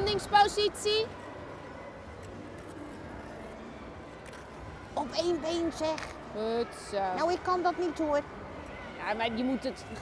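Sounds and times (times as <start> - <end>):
ice rink background noise: 0.0 - 10.0.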